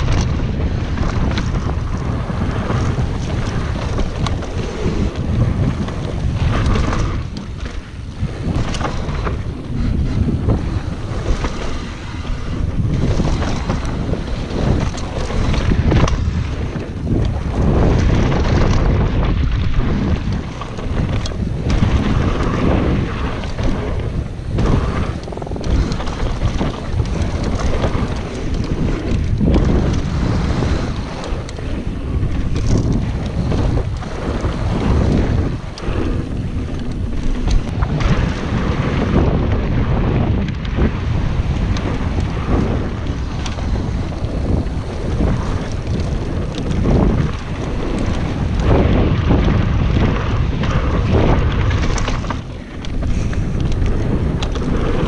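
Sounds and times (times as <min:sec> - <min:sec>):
bike knocking over bumps: 0:00.0 - 0:55.0
bike tyres running over dirt: 0:00.0 - 0:55.0
wind buffeting microphone: 0:00.0 - 0:55.0.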